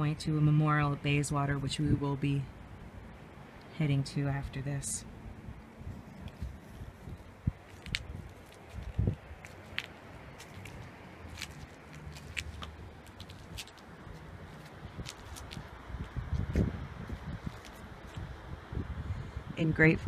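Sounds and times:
low steady rumble: 0:00.0 - 0:20.0
footsteps on stone: 0:06.2 - 0:16.7, 0:17.4 - 0:18.2.

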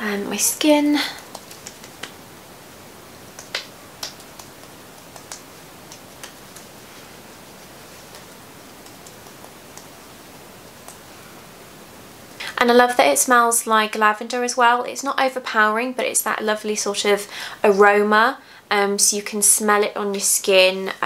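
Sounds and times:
background hiss: 0:00.0 - 0:21.0
fingertips tapping skin: 0:01.2 - 0:02.2, 0:03.3 - 0:06.8, 0:08.0 - 0:09.9.

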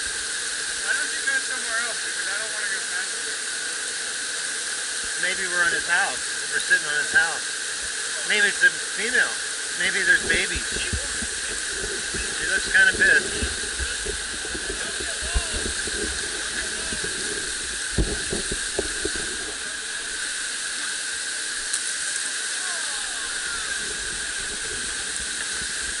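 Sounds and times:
whitewater rapids roaring: 0:04.6 - 0:26.0.

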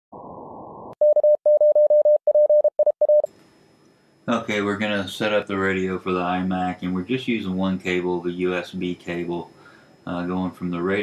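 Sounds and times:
morse code tone: 0:01.0 - 0:03.3.

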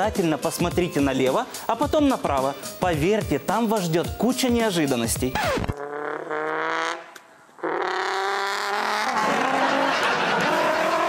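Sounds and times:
car engine and tyres on road: 0:05.7 - 0:11.0.

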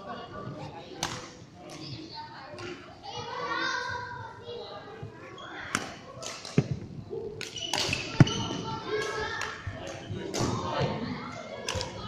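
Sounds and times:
rackets hitting shuttlecocks: 0:01.0 - 0:01.8, 0:05.7 - 0:06.8, 0:07.4 - 0:10.9, 0:11.6 - 0:12.0.

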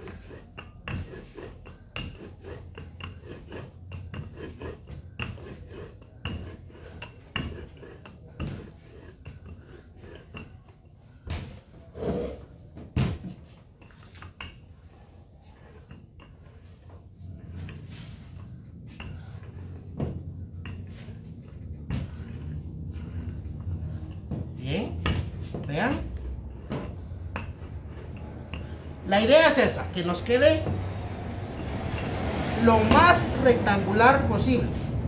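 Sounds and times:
rolling pin on dough: 0:00.0 - 0:33.4.

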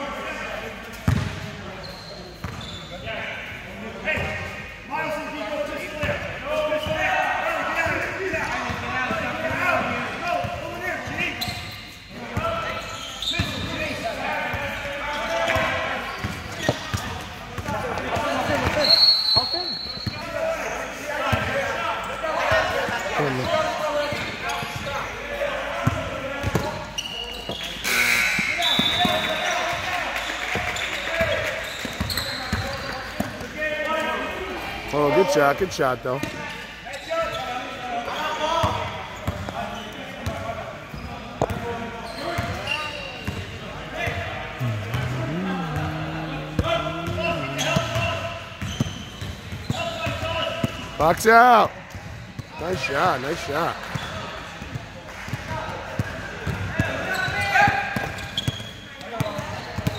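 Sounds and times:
background chatter: 0:00.0 - 0:59.9
basketball bouncing on gym floor: 0:01.0 - 0:01.4, 0:41.4 - 0:41.6.

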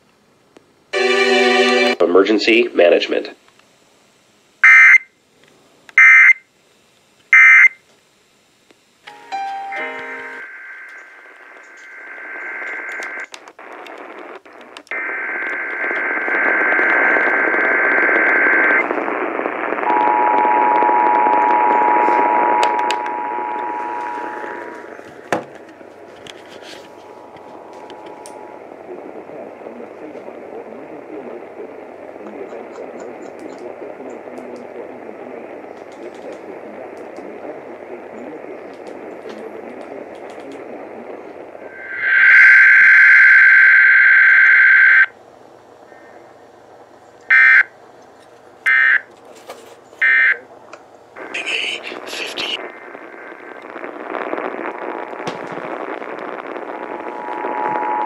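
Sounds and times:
radio static hiss: 0:00.0 - 0:58.0
data bursts: 0:14.9 - 0:25.3, 0:41.7 - 0:45.1, 0:51.2 - 0:58.0
screeching header data tones: 0:14.9 - 0:26.0, 0:41.6 - 0:45.1, 0:47.3 - 0:47.7, 0:51.2 - 0:58.0.

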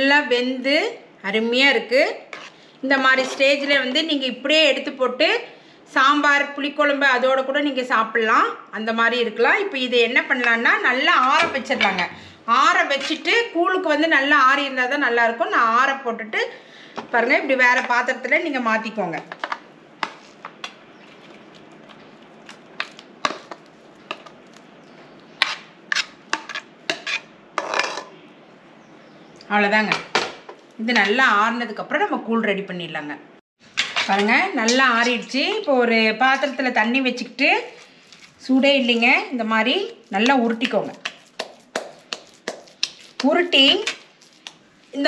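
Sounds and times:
hands patting dough: 0:37.8 - 0:45.0.

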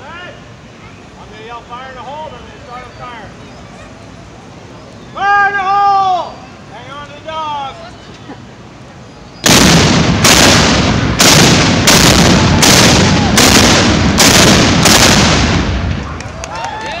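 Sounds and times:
cannons firing: 0:09.4 - 0:16.2
rumbling echo: 0:09.4 - 0:16.4.

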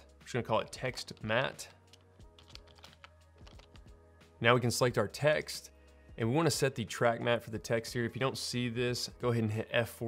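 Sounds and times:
faint background music: 0:00.0 - 0:10.0
quiet keyboard keystrokes: 0:01.9 - 0:03.8.

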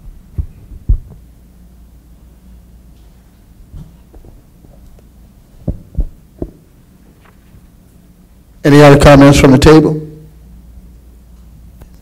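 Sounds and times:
faint steady low hum: 0:00.0 - 0:12.0
dull low thumps: 0:00.3 - 0:01.3, 0:05.6 - 0:06.7.

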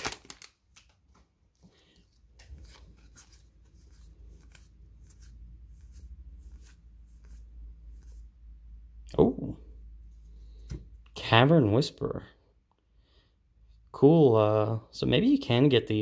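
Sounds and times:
foil wrapper rustling: 0:00.0 - 0:01.0.

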